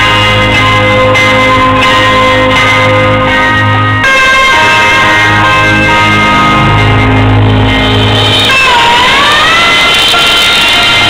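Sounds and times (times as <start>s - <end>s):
live rock band: 0.0s - 11.0s
loud held note sliding in pitch: 5.5s - 11.0s.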